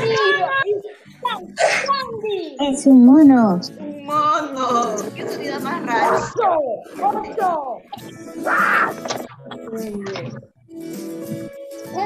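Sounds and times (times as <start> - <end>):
child's voice: 0.0 - 2.9, 3.8 - 5.0, 5.9 - 8.1.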